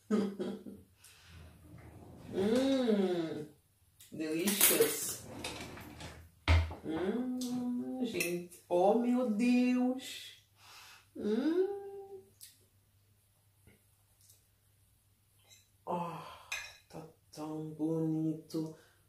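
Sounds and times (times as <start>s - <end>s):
woman humming mmm: 2.3s - 3.5s, 6.8s - 7.9s, 11.2s - 12.3s
metal cutlery clinking: 4.4s - 5.6s.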